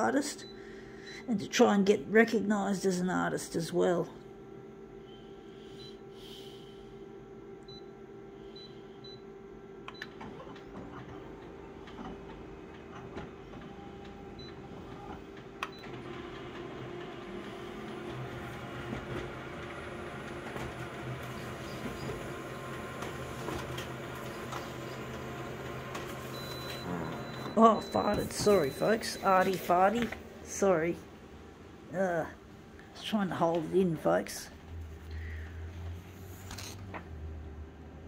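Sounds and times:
photocopier running: 7.4 - 31.3.

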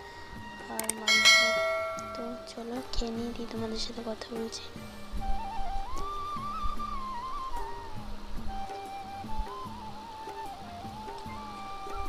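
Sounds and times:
notification bell ringing: 1.0 - 2.6.

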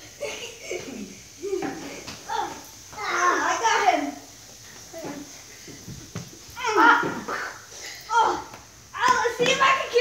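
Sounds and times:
boys shouting and yelping: 0.4 - 4.3, 6.5 - 10.0.

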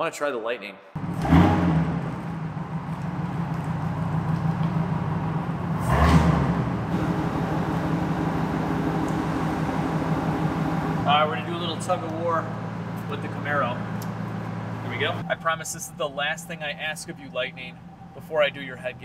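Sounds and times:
truck engine revving: 1.0 - 19.0.

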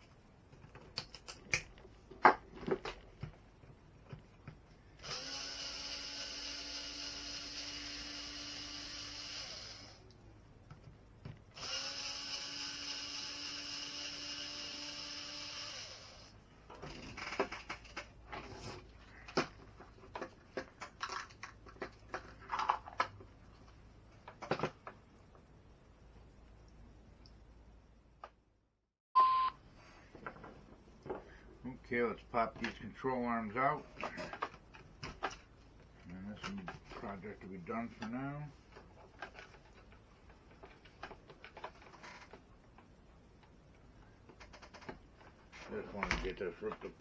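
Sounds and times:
electric screwdriver running: 5.0 - 10.0, 11.6 - 16.3.

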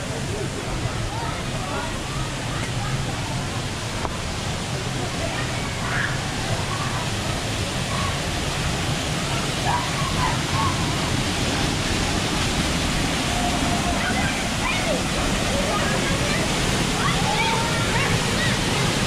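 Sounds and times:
faint distant voices: 0.0 - 19.0
waterfall pouring into pool: 0.0 - 19.0.

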